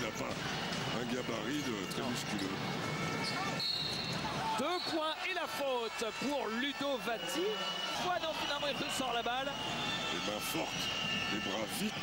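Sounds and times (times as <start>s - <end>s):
arena crowd noise: 0.0s - 12.0s
referee's whistle blowing: 3.2s - 12.0s.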